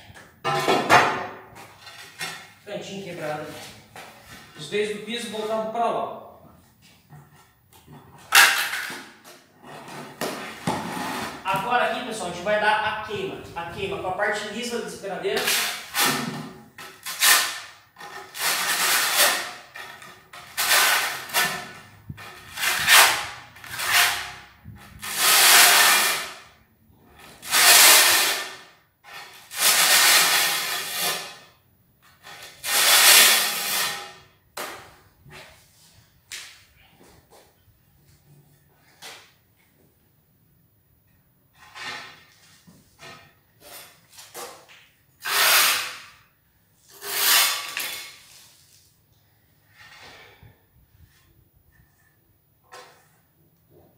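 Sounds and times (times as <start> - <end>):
trowel scraping mortar on tile: 1.6 - 2.6, 8.2 - 11.7, 15.4 - 26.5, 27.1 - 34.3, 41.6 - 44.6, 45.2 - 46.2, 46.8 - 48.8.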